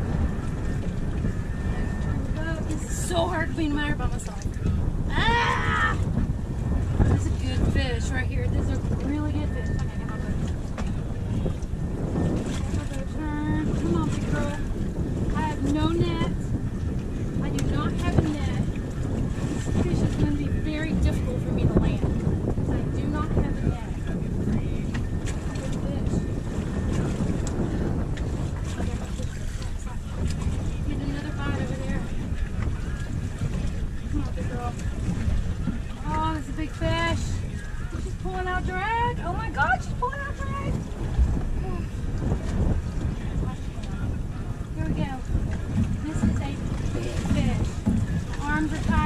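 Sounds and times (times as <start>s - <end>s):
water washing around hull: 0.0s - 49.0s
wind buffeting microphone: 0.0s - 49.0s.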